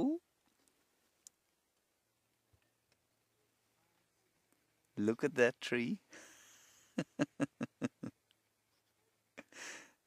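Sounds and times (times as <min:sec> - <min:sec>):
person laughing softly: 0:06.2 - 0:08.2
person sighing: 0:09.4 - 0:10.0.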